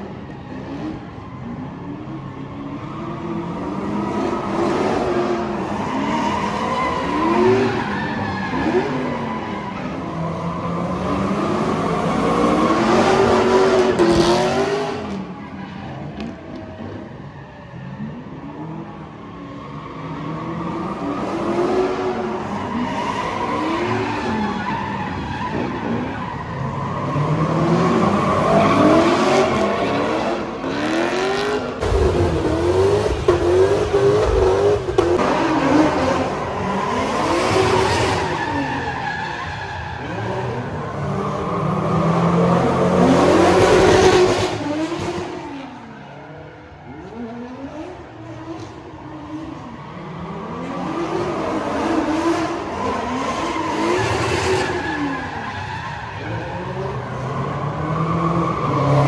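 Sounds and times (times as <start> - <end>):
car engine revving: 26.9 - 39.0.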